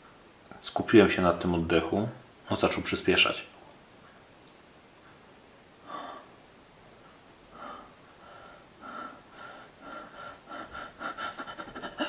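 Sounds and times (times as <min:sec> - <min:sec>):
man breathing quickly: 0:05.8 - 0:06.5, 0:07.5 - 0:12.0.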